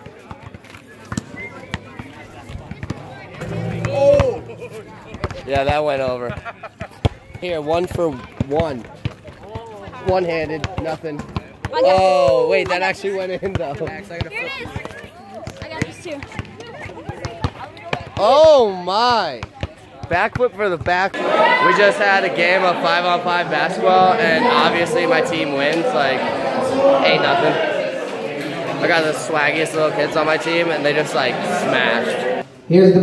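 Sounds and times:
people talking: 1.5 - 6.4
sharp knocks: 3.4 - 5.8.

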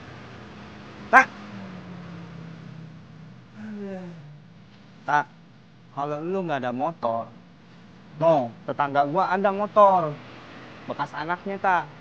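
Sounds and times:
faint low hum: 0.0 - 10.3.

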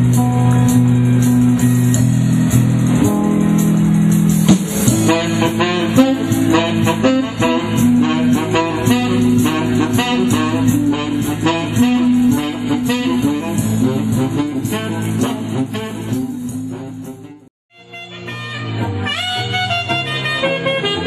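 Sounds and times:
plucked string accompaniment: 0.0 - 16.4
tenor saxophone melody: 4.9 - 21.0.

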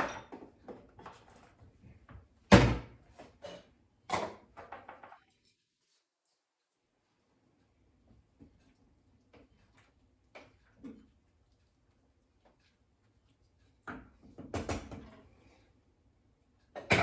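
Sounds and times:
kitchen utensils knocking and clattering: 0.0 - 1.4, 2.5 - 5.3, 13.9 - 15.3, 16.7 - 17.0.

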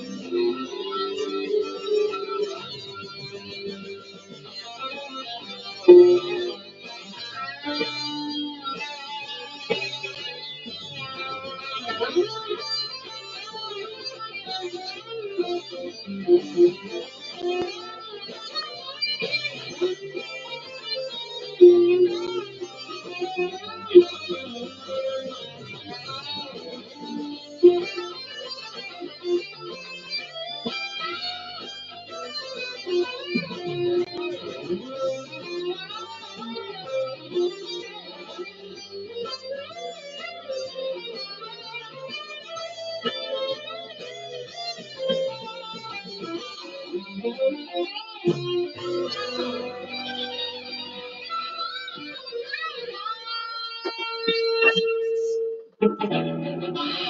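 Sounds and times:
electric guitar lead with bends: 0.0 - 57.0.

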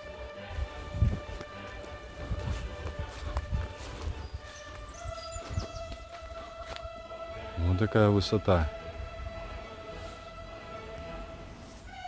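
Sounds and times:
footsteps on grass and leaves: 0.0 - 7.1, 9.9 - 10.4
background music of held notes: 0.0 - 12.0.

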